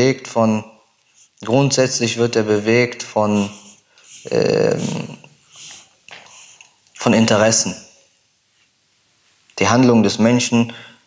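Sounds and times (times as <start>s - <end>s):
mouth and breath noises: 1.0s - 1.5s, 3.2s - 7.0s
man inhaling: 3.4s - 6.8s.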